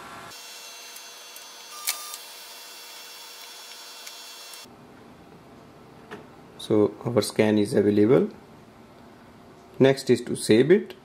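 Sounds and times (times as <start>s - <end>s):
printer scanning whir: 0.3s - 4.7s.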